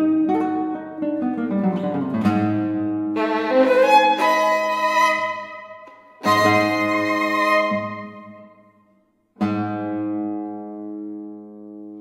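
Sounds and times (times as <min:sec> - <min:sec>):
classical guitar plucked notes: 0:00.0 - 0:12.0.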